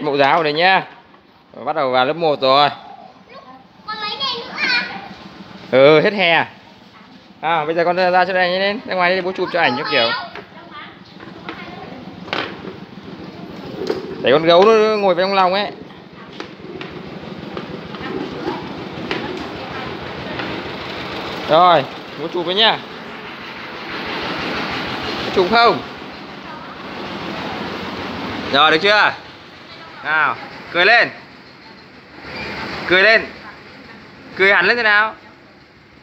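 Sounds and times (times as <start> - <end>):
plastic wheels rolling on concrete: 7.0 - 22.8.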